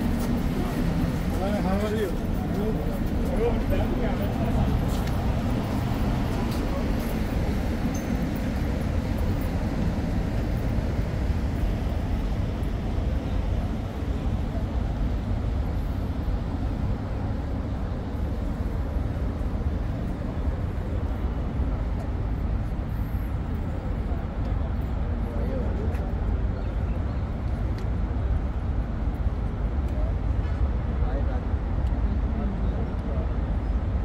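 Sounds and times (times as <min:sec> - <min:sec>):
city traffic rumble: 0:00.0 - 0:34.0.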